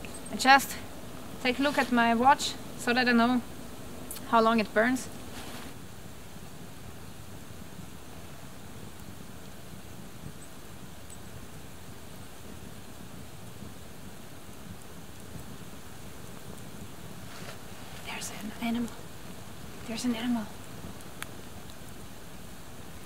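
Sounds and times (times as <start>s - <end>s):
torch flame hissing: 13.1s - 22.7s.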